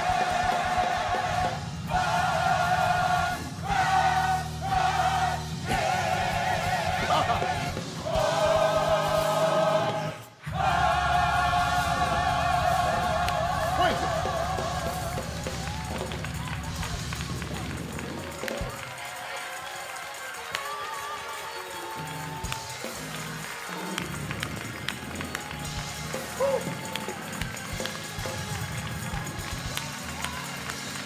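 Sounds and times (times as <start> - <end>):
choir singing: 0.0 - 15.6
bass or organ notes: 0.0 - 18.2
congregation voices and shouts: 0.0 - 23.8
sharp claps: 14.2 - 31.0.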